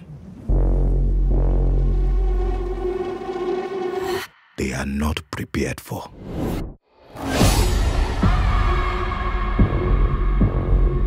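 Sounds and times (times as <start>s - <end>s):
deep bass drone: 0.4s - 4.0s
low pulsing hits: 0.5s - 4.0s.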